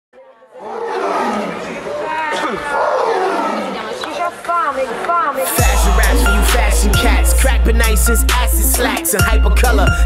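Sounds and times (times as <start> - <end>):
rap music: 4.5 - 10.0.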